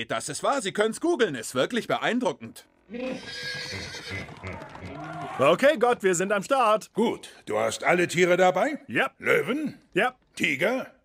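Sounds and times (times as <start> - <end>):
horse-like whinny: 2.9 - 5.4
hooves clopping on wooden boards: 4.0 - 6.3.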